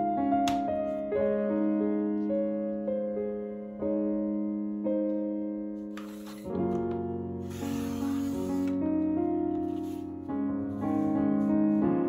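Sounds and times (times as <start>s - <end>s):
soft piano music: 0.0s - 12.0s
paper trimmer blade hissing: 6.0s - 6.6s, 7.5s - 8.8s, 9.7s - 10.1s.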